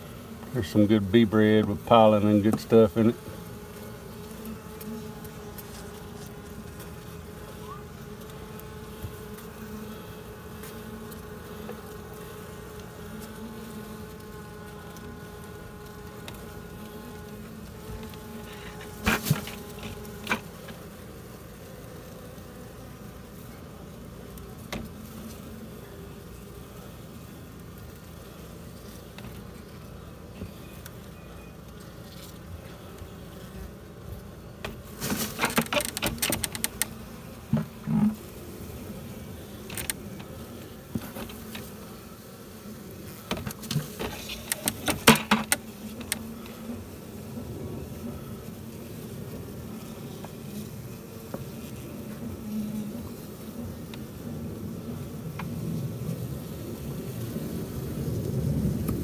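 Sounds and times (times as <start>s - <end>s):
bees buzzing: 0.0s - 59.0s.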